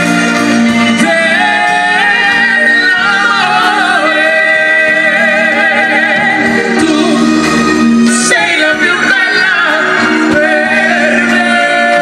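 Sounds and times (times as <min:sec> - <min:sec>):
live dance band playing: 0:00.0 - 0:12.0
person singing with vibrato: 0:00.0 - 0:12.0.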